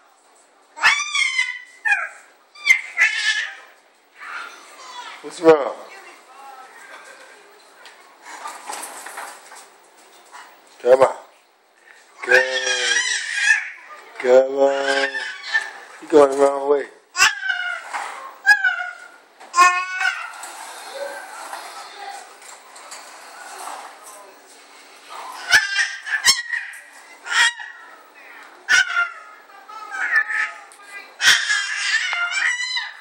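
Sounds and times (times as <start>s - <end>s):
baby squealing: 12.3s - 13.9s, 14.6s - 15.9s, 17.2s - 21.3s, 25.4s - 27.9s, 29.9s - 33.0s.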